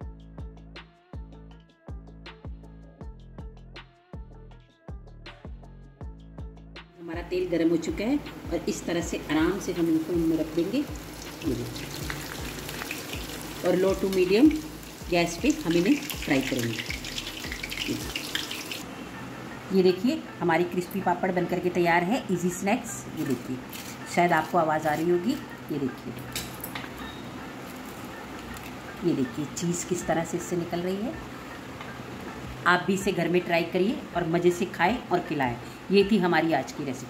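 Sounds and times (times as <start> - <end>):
papad sizzling in hot oil: 9.2 - 18.9
crisp snack crackling: 27.7 - 28.8.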